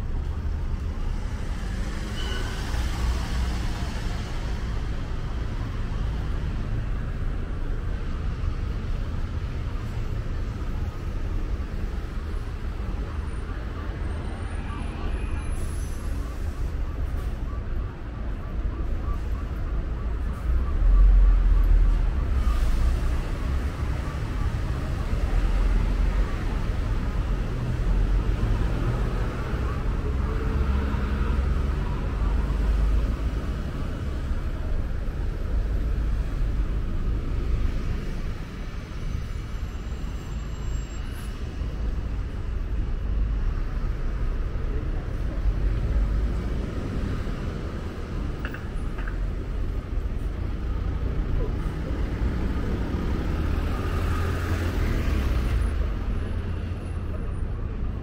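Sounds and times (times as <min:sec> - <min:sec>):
vehicles passing: 0:00.0 - 0:58.0.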